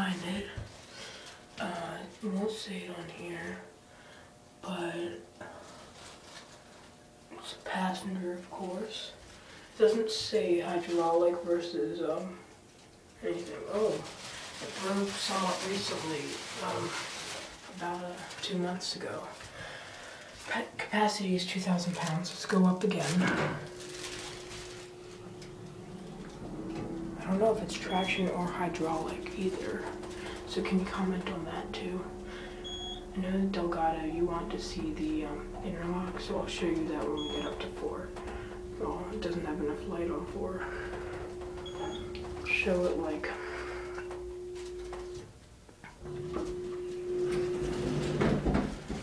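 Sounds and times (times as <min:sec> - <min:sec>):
elevator machinery humming: 0:22.7 - 0:49.0.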